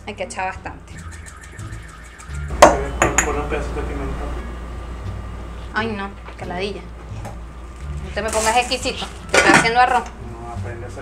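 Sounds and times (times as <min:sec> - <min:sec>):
cookware knocking and clattering: 0:02.6 - 0:03.4, 0:09.3 - 0:10.1.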